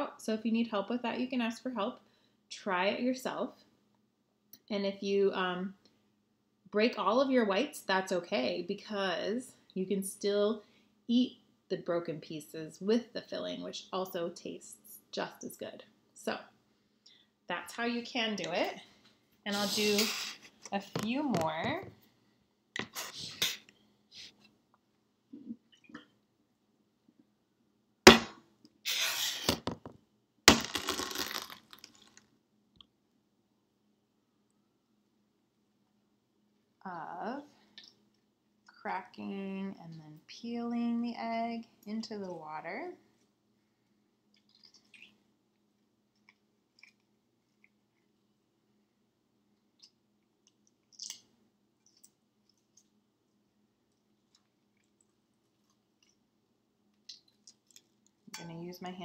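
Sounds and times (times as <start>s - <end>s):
egg shell cracking: 30.5s - 32.2s
egg shell crunching: 30.5s - 32.2s.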